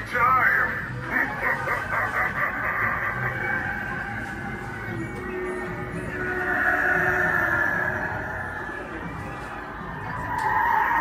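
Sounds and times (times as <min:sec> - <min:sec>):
carnival music from speaker: 0:00.0 - 0:10.2.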